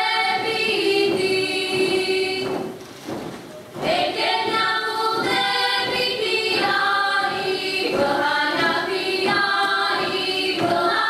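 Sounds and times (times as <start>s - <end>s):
women singing in chorus: 0.0s - 2.8s, 3.8s - 11.0s.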